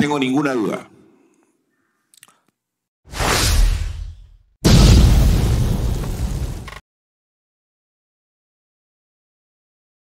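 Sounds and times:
whoosh and boom sound effects: 0:03.1 - 0:06.8.

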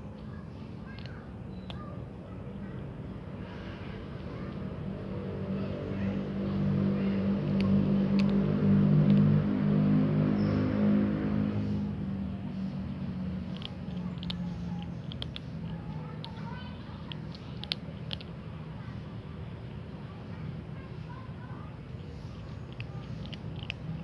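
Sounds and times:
vehicle engine passing: 0:03.4 - 0:24.0.

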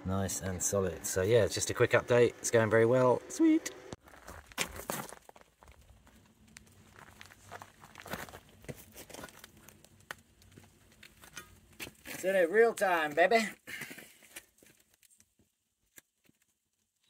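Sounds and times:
faint clicks and rustles: 0:03.8 - 0:12.3
footsteps: 0:03.8 - 0:12.4.

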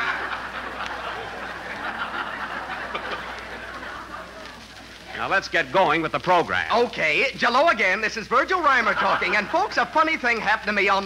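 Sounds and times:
studio audience laughing: 0:00.0 - 0:05.2, 0:08.6 - 0:10.2.

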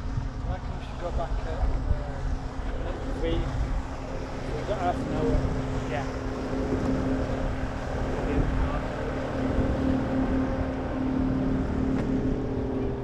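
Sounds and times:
outboard motor running: 0:00.0 - 0:13.0
wind buffeting microphone: 0:00.0 - 0:13.0.

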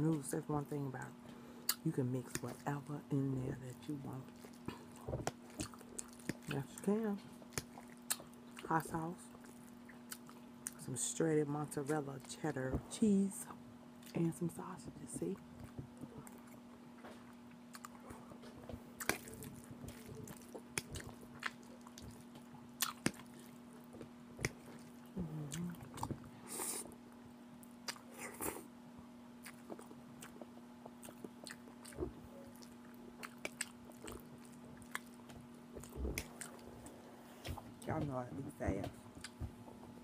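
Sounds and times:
faint steady hum: 0:00.0 - 0:40.0
wet chewing: 0:04.2 - 0:10.8, 0:15.4 - 0:26.9, 0:27.6 - 0:28.6, 0:29.4 - 0:36.9
lip smacks: 0:07.5 - 0:08.7, 0:19.0 - 0:23.6, 0:27.8 - 0:28.6, 0:29.4 - 0:36.6.

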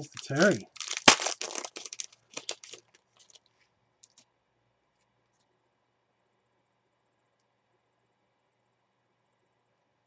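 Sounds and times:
sharp crack: 0:00.0 - 0:02.8
foil pack crinkling and tearing: 0:00.0 - 0:03.4.

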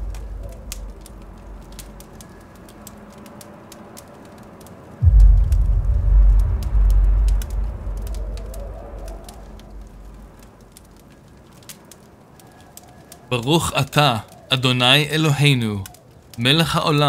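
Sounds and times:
faint crackle: 0:00.0 - 0:17.0
sudden deep rumble: 0:05.0 - 0:10.6.

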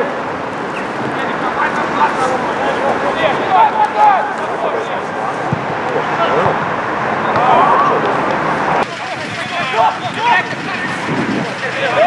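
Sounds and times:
open-air background noise: 0:00.0 - 0:12.0
players shouting: 0:00.0 - 0:12.0.

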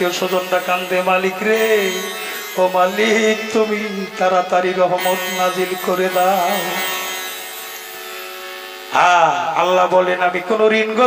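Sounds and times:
sustained instrumental chord: 0:00.0 - 0:11.0.

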